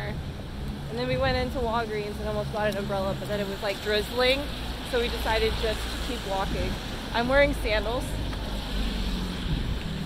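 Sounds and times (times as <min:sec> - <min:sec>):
distant traffic: 0:00.0 - 0:10.0
wind rumble on microphone: 0:00.0 - 0:10.0.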